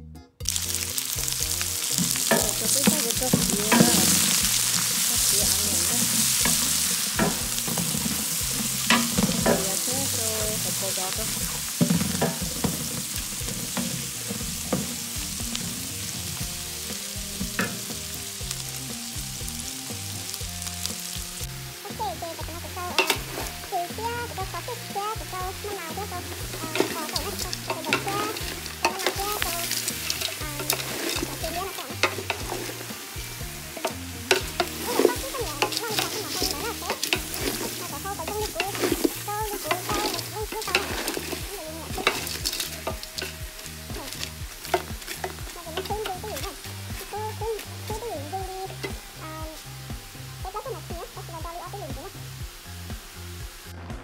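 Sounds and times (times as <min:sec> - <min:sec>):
ginger and onion sizzling in oil: 0:00.4 - 0:54.0
wooden spatula scraping metal pot: 0:00.5 - 0:16.4, 0:25.5 - 0:48.1.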